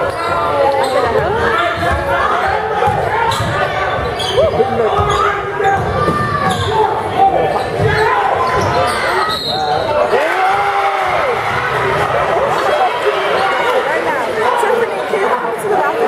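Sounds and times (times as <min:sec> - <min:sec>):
sneakers squeaking: 0:00.0 - 0:10.1
murmur of crowd voices: 0:00.0 - 0:16.0.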